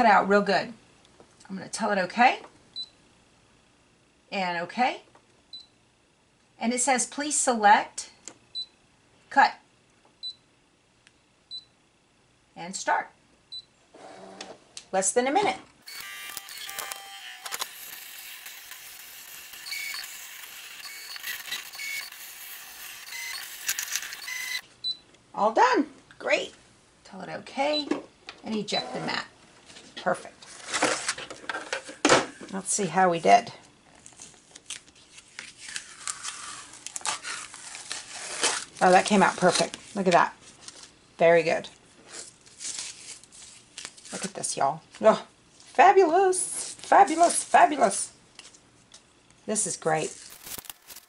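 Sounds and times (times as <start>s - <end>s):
plastic mat crinkling: 34.0s - 41.0s, 42.1s - 44.3s, 50.0s - 51.0s.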